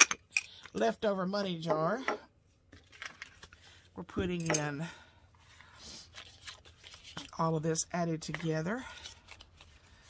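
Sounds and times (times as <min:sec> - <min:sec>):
paper bills rustling: 0:05.6 - 0:10.0.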